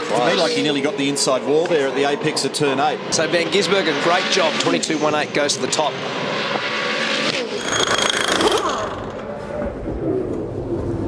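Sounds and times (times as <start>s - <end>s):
pit-lane sound: 0.0s - 11.0s
race car engine whining: 0.0s - 11.0s.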